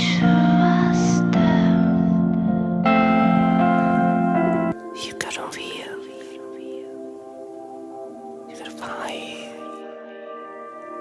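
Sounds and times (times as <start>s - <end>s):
soft ambient music: 0.0s - 11.0s
whispered breathy vocals: 5.0s - 7.0s, 8.5s - 9.8s.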